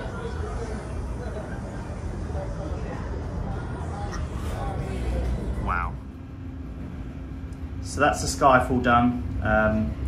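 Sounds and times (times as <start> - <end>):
low rumbling room ambience: 0.0 - 10.0
steady low hum: 0.0 - 10.0.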